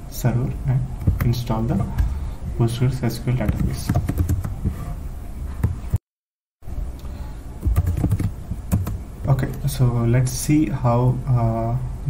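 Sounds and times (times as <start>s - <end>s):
low steady hum: 0.0s - 6.0s, 6.6s - 12.0s
computer keyboard typing: 3.4s - 4.6s, 7.6s - 9.0s.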